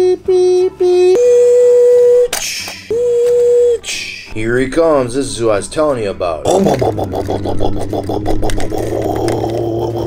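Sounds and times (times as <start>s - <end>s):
man imitating truck beeps: 0.0s - 2.3s, 2.9s - 4.0s.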